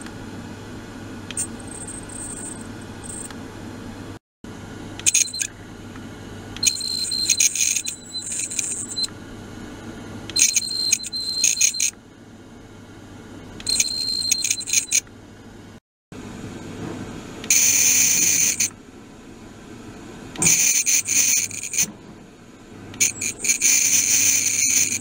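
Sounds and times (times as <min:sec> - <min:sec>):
high-pitched ringing tones: 0:01.3 - 0:03.3, 0:05.0 - 0:05.6, 0:06.6 - 0:09.1, 0:10.4 - 0:11.9, 0:13.6 - 0:15.0, 0:17.5 - 0:18.7, 0:20.4 - 0:21.9, 0:23.0 - 0:25.0
vibrating device low hum: 0:01.4 - 0:03.3, 0:06.6 - 0:09.1, 0:13.6 - 0:15.0, 0:20.4 - 0:25.0.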